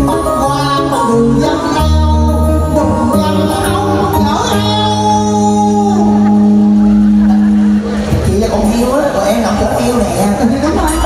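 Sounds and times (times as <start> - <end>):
backing music: 0.0 - 11.0.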